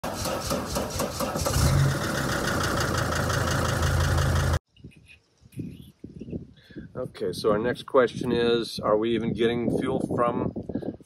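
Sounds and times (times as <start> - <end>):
van engine cranking and running: 0.0 - 4.6.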